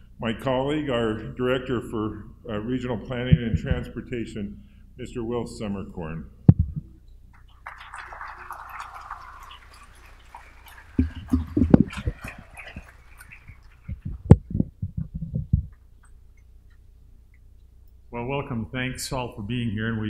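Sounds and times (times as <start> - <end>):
microphone handling thumps: 3.3 - 3.9, 6.5 - 6.9, 11.0 - 12.4, 13.9 - 15.8.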